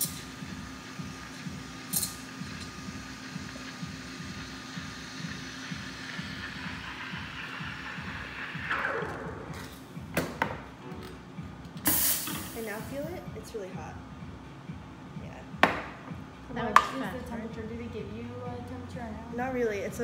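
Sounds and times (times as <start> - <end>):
background music with beat: 0.0 - 20.0
steam wand hissing in milk: 0.8 - 8.9.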